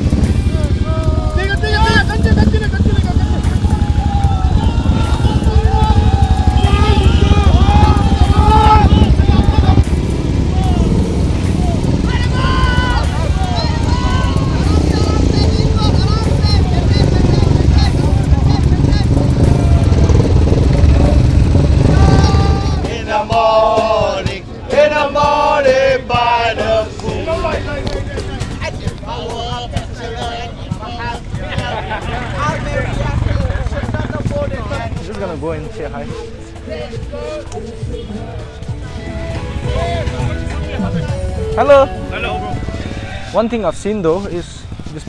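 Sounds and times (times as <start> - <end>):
motorcycle engines at low revs: 0.0 - 45.0
voices: 0.0 - 45.0.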